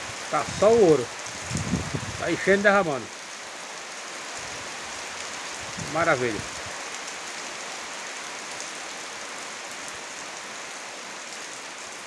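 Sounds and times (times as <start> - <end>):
rain on leaves and puddles: 0.0 - 12.0.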